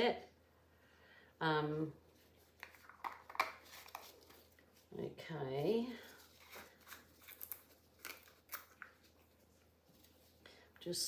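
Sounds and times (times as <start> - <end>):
plastic jars clicking: 2.6 - 4.0.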